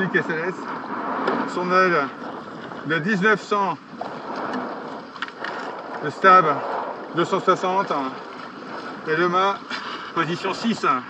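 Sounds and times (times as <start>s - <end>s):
rushing water: 0.0s - 11.0s
wind: 0.0s - 11.0s.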